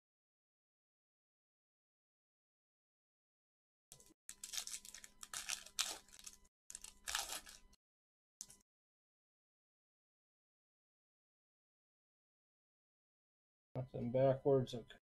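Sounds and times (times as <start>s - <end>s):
foil wrapper tearing and crinkling: 4.3s - 7.8s.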